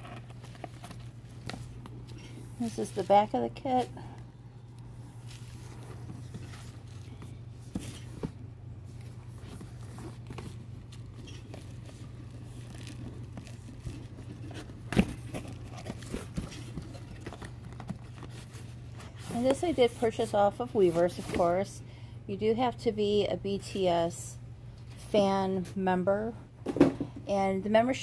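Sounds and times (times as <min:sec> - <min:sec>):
steady low hum: 0:00.0 - 0:28.0
cardboard box handling: 0:05.2 - 0:20.0.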